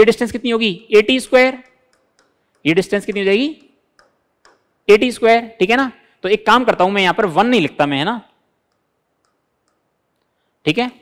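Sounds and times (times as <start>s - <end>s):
man speaking: 0.0s - 1.7s, 2.6s - 3.7s, 4.9s - 8.3s, 10.6s - 11.0s
pen tapping touchscreen: 1.4s - 4.9s, 8.6s - 10.3s.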